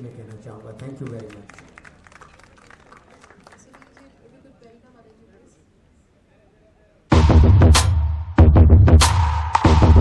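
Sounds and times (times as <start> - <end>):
audience applause: 0.3 - 4.1.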